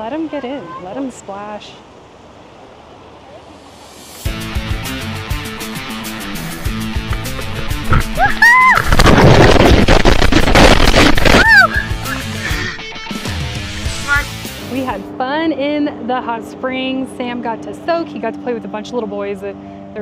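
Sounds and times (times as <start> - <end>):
rushing splashing river water: 1.8 - 14.8
background music: 4.2 - 8.5, 11.4 - 15.2
children shouting and squealing: 8.0 - 9.3, 11.2 - 12.9.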